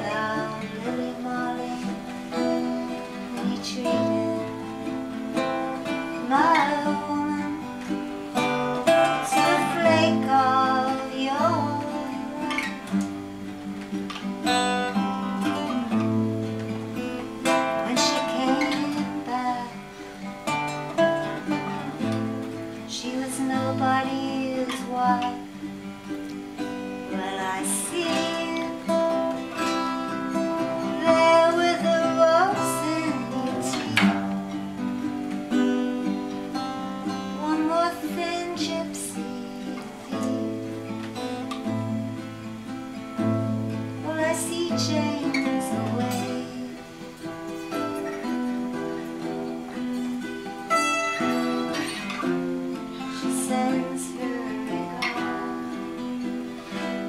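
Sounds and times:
acoustic guitars playing: 0.0s - 57.0s
ukulele: 0.0s - 57.0s.

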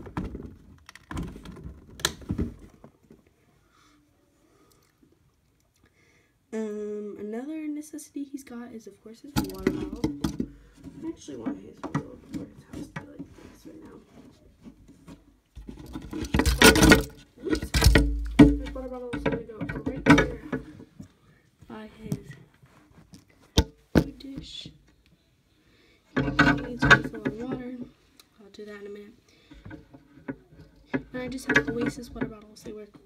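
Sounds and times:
person talking: 6.6s - 10.4s, 17.4s - 20.8s, 21.7s - 22.5s, 24.0s - 24.8s, 26.2s - 29.2s, 31.1s - 33.0s
bedding rustling against microphone: 9.4s - 24.7s.

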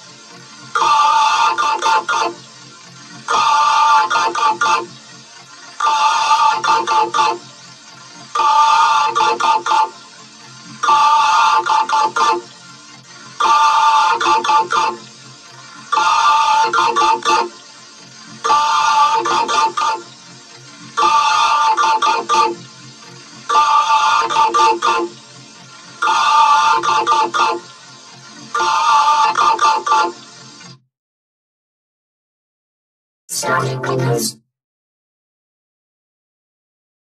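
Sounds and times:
processed voice syllables: 18.5s - 20.0s, 33.3s - 34.4s.

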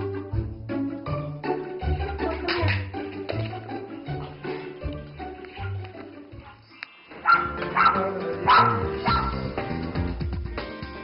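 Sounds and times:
background music: 0.0s - 11.0s
small dog yapping: 7.2s - 9.4s.

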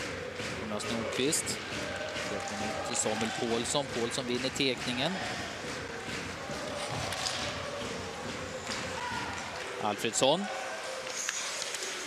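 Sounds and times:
crowd murmur: 0.0s - 12.0s
sticks and puck tapping on ice: 0.4s - 9.7s.

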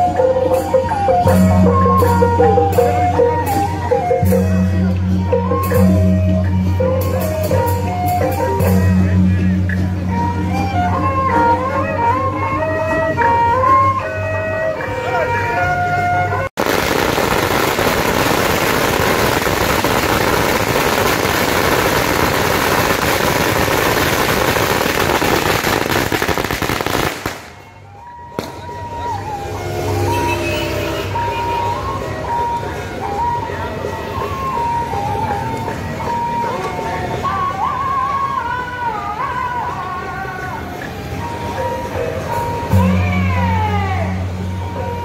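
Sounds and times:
street and traffic noise: 0.0s - 45.0s
firecrackers crackling: 16.6s - 28.8s.

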